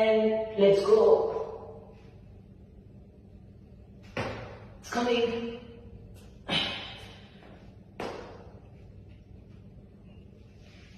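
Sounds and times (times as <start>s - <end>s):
foot thumping against a wall: 4.0s - 4.8s, 6.5s - 8.6s.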